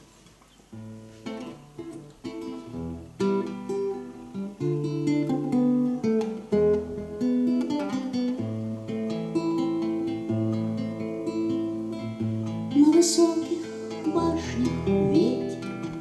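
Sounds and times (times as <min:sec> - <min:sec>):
nylon-string guitar playing: 0:00.7 - 0:16.0.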